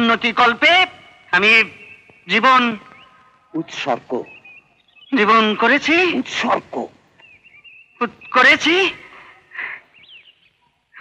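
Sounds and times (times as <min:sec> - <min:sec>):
harsh bird call: 0:00.0 - 0:11.0
high bird chirp: 0:00.0 - 0:11.0.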